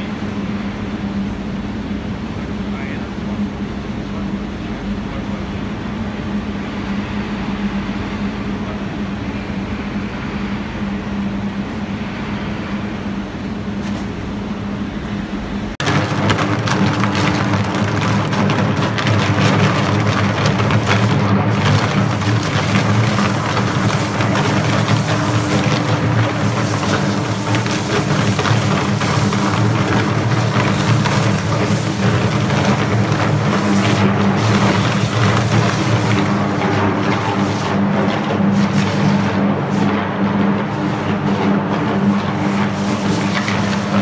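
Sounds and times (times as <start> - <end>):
electric arc humming and crackling: 15.7 - 44.0.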